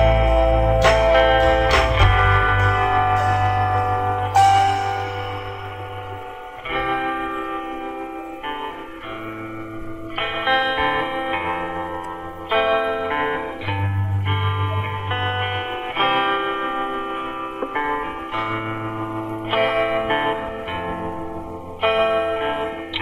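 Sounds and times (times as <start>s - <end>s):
low bass note: 0.0s - 6.2s
plucked string chords: 0.0s - 23.0s.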